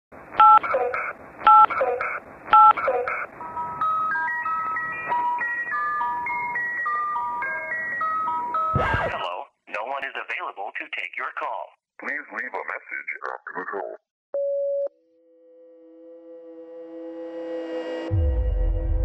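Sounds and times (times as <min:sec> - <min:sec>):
voicemail greeting voice: 0:00.4 - 0:03.8, 0:08.8 - 0:14.0
telephone keypad tones: 0:00.4 - 0:08.7
loud thump: 0:08.7 - 0:09.3.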